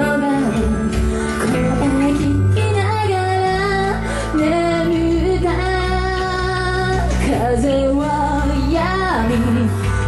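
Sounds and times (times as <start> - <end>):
drums: 0.0 - 10.0
electric guitar: 0.0 - 10.0.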